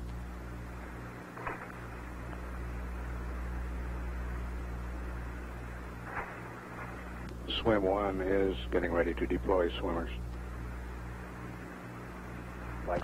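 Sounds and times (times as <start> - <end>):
low even hum: 0.0 - 13.0
steady hiss: 0.0 - 13.0.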